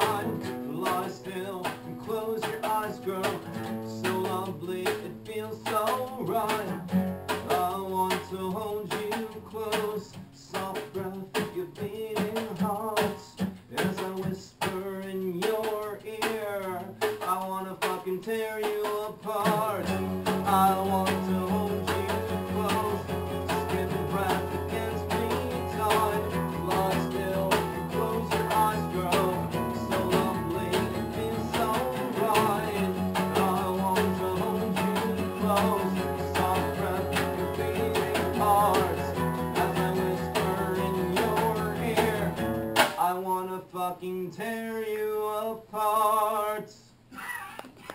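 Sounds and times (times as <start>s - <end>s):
acoustic bass guitar: 0.0s - 43.4s
acoustic guitars strumming: 0.0s - 46.6s.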